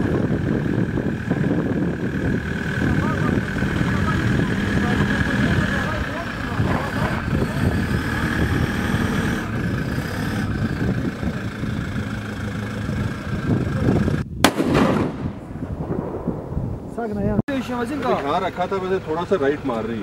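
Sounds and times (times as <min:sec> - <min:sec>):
background voices: 0:00.0 - 0:14.2
vehicle engine running: 0:00.0 - 0:14.3, 0:17.5 - 0:20.0
rifle shot: 0:14.4 - 0:16.6.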